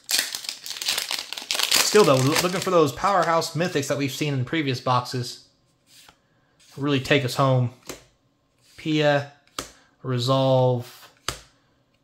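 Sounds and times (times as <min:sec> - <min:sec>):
foil wrapper crinkling: 0:00.0 - 0:03.3.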